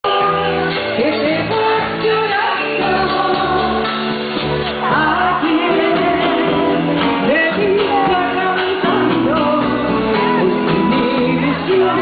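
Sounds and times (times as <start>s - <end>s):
band playing: 0.0s - 12.0s
woman singing into microphone: 0.0s - 12.0s.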